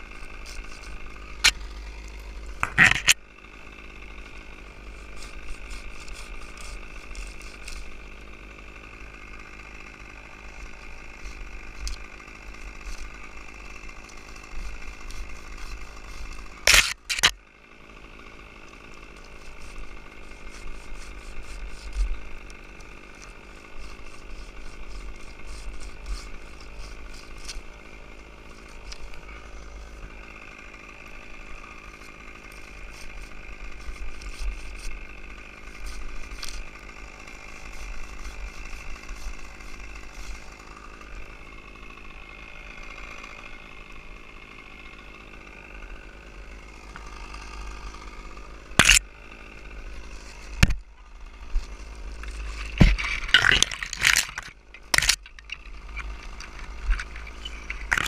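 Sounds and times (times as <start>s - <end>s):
engine running: 0.0s - 58.0s.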